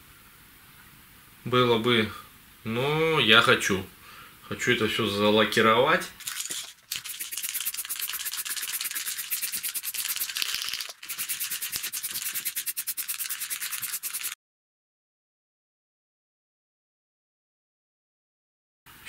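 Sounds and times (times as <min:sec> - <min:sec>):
aerosol spray can hissing: 0:06.3 - 0:14.4.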